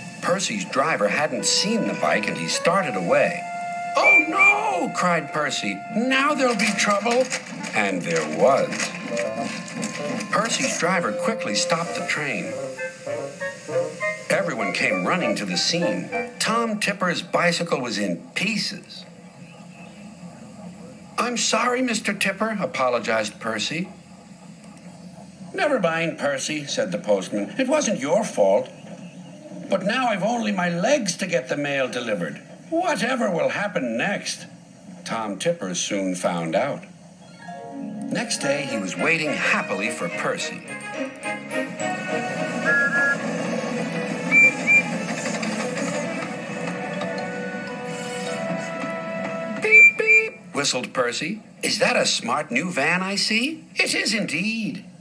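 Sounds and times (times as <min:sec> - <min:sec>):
steam whistle tooting: 0:00.0 - 0:07.3, 0:08.1 - 0:16.3, 0:42.1 - 0:46.0, 0:47.3 - 0:50.5
background music: 0:00.0 - 0:17.6, 0:37.2 - 0:50.6.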